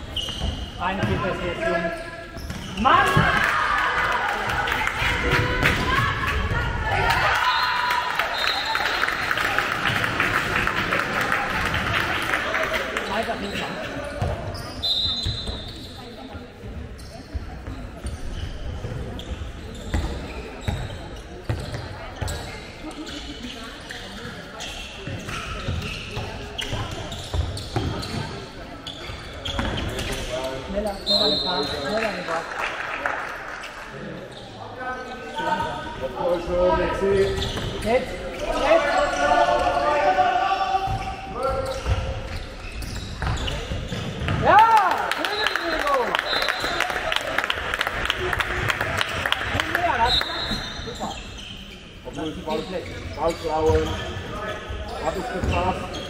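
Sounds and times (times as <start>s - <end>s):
players and spectators shouting: 38.5s - 41.6s.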